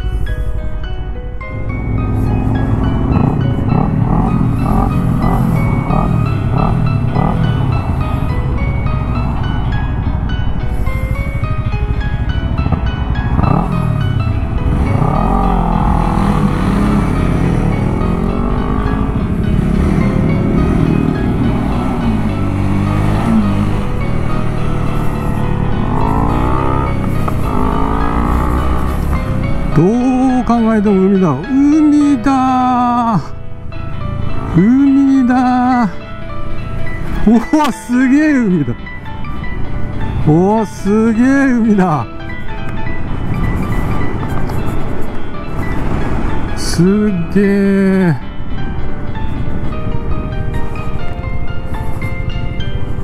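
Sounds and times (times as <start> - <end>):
background music: 0.0 - 53.0
motorcycle engine accelerating: 1.4 - 31.5, 33.6 - 47.4.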